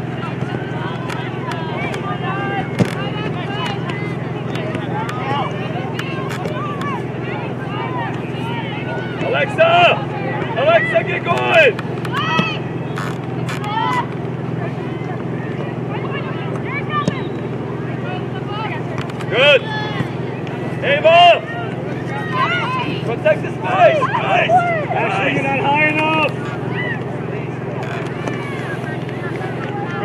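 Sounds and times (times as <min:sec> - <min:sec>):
players and spectators shouting: 0:00.0 - 0:30.0.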